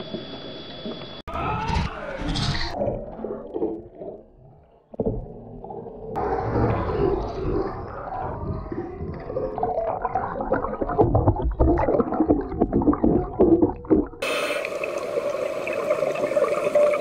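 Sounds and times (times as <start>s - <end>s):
bubbles: 2.7s - 17.0s.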